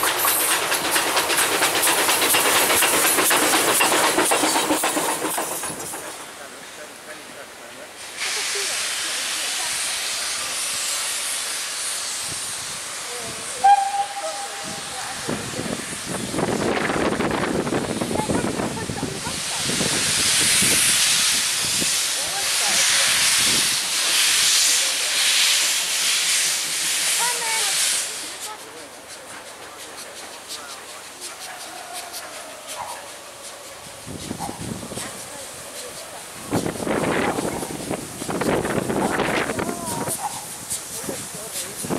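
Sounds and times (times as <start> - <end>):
steam locomotive hissing steam: 0.0 - 41.9
steam whistle blast: 13.6 - 15.0.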